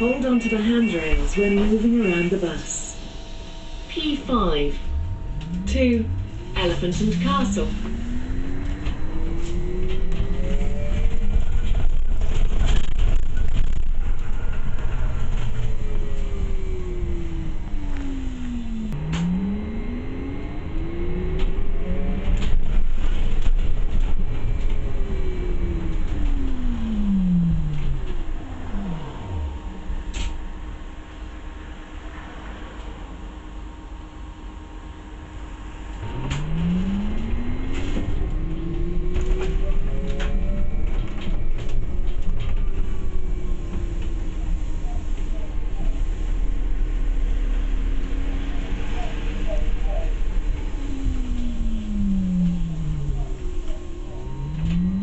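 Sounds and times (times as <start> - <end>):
bus drivetrain whine: 0.0 - 55.0
low road rumble: 0.0 - 55.0.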